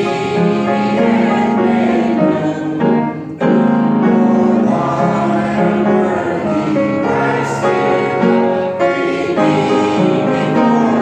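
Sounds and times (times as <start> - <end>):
congregation singing a hymn: 0.0 - 11.0
piano accompaniment: 0.0 - 11.0.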